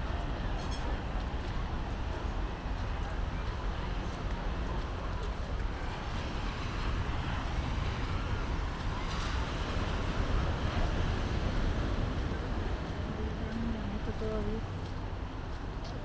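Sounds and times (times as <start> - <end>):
distant traffic: 0.0 - 16.0
footsteps on pavement: 0.0 - 16.0
wind: 0.0 - 16.0.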